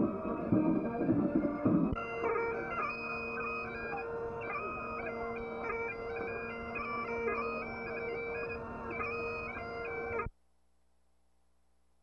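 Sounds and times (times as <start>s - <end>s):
bagpipe playing a tune: 0.0s - 10.3s.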